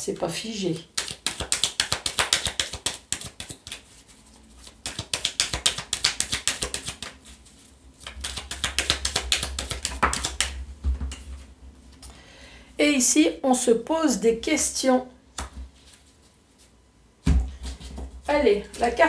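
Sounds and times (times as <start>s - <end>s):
cards being shuffled: 0.8s - 11.2s.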